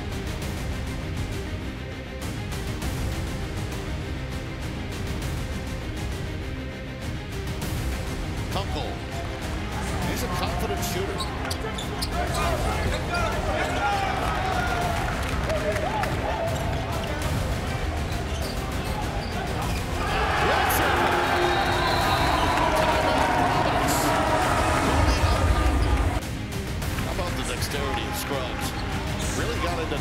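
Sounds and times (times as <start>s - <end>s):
background music: 0.0s - 30.0s
players' voices: 7.9s - 26.2s, 26.8s - 30.0s
dense wash of crowd noise: 8.8s - 26.2s.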